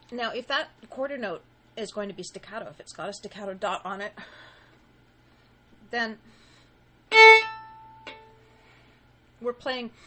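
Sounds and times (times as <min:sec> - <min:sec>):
staccato violin note: 0:07.1 - 0:08.2.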